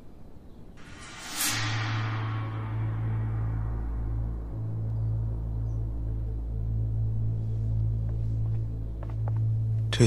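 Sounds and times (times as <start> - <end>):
low sustained music drone: 0.8 - 10.0.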